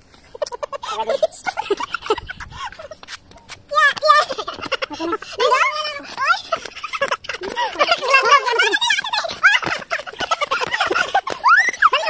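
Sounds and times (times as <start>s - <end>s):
group of people laughing: 0.2s - 3.2s, 4.0s - 12.0s.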